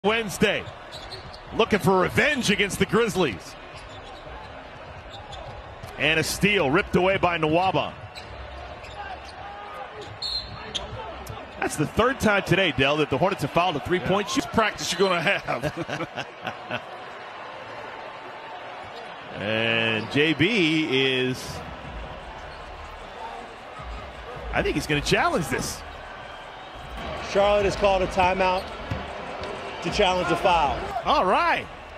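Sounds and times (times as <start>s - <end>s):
low arena background: 0.0s - 31.9s
shoe squeaks on court: 0.8s - 1.5s, 3.8s - 4.3s, 10.0s - 11.0s, 28.5s - 29.2s.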